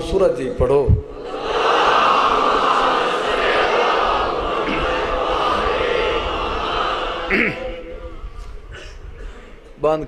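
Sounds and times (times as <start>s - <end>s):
congregation reciting in unison: 1.0s - 8.4s.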